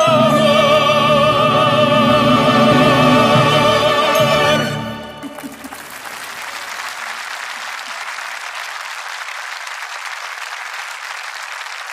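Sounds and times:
orchestral music: 0.0 - 6.0
audience applauding: 5.1 - 11.9.

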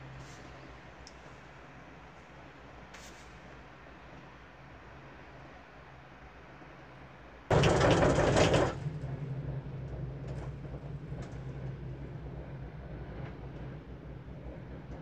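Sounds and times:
gondola cabin low hum: 0.0 - 15.0.

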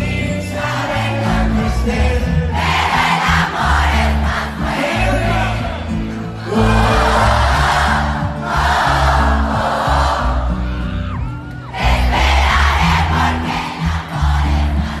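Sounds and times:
crowd cheering and shouting: 0.0 - 15.0
live pop band music: 0.0 - 15.0.

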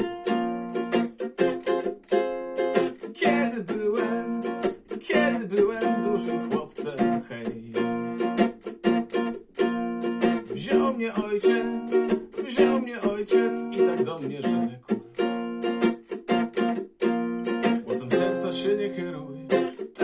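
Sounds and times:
small nylon-string guitar strummed: 0.0 - 20.0.

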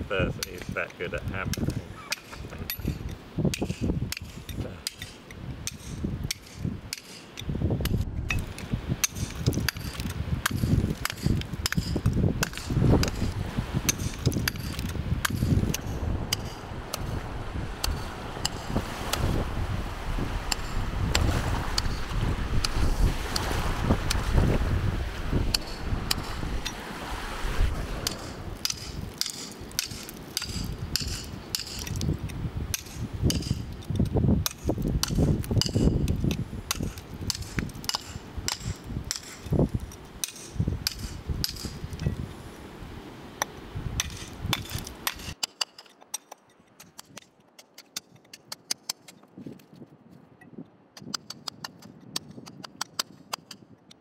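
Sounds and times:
hammer tapping steel chisel on rock: 0.4 - 0.8, 1.5 - 13.2, 13.9 - 17.1, 28.0 - 39.6, 40.2 - 42.2, 51.0 - 54.0.

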